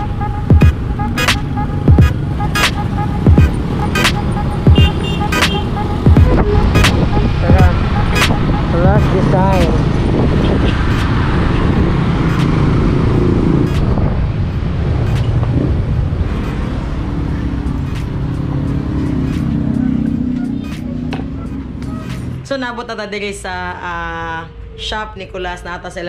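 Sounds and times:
motorcycle engine running: 0.0s - 21.9s
road noise: 0.0s - 26.0s
wind noise: 5.6s - 19.7s.

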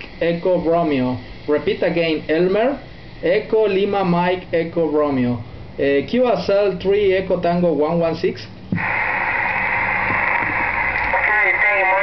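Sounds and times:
radio static hiss from speaker: 0.0s - 6.8s, 7.5s - 12.0s.

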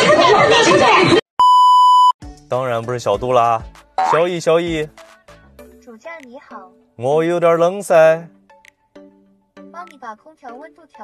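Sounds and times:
steady test tone beep: 1.4s - 2.2s, 4.0s - 4.3s.

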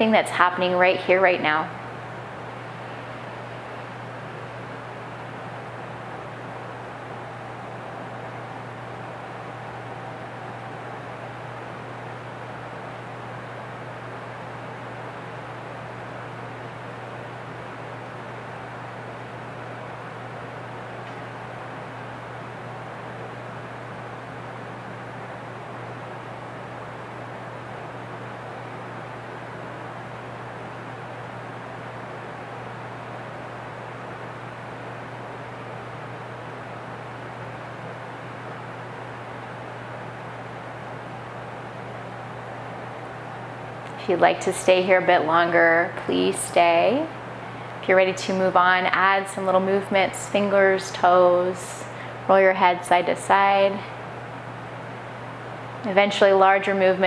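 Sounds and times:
low hum: 0.0s - 57.0s.

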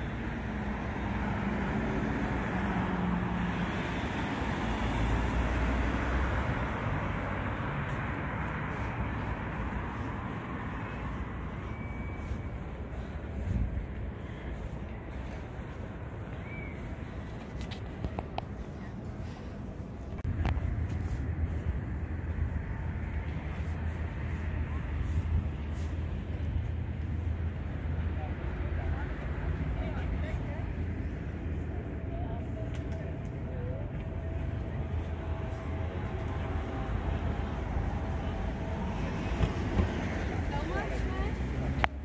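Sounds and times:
traffic rumble: 0.0s - 42.0s
voices of passers-by: 0.0s - 42.0s.

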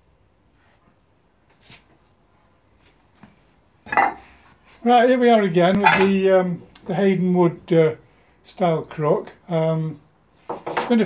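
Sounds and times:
man speaking: 4.8s - 10.0s.

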